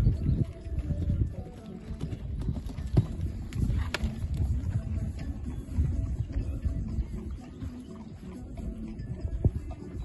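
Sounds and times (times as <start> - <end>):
horse hoofbeats on sand: 0.0 - 10.0.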